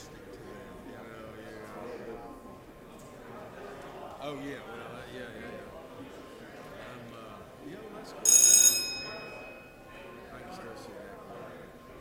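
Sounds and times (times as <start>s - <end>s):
low murmured talk: 0.0s - 12.0s
bell-like ring: 8.3s - 10.0s.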